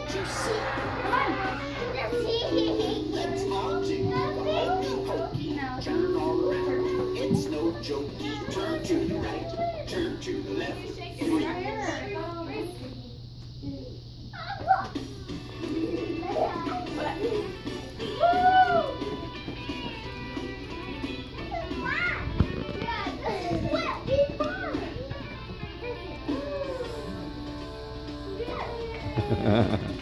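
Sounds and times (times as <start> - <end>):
children squealing: 0.0 - 5.3, 18.0 - 19.8
children's dance song: 0.0 - 12.2, 14.9 - 30.0
children chattering and calling out: 0.0 - 30.0.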